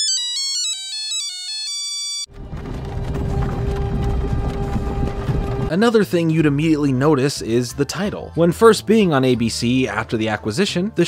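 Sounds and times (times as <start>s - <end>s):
background music: 2.4s - 11.0s.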